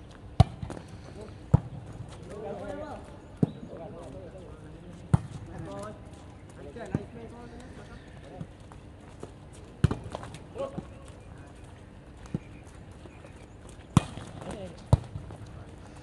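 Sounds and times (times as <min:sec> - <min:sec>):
volleyball being struck: 0:14.0 - 0:15.3.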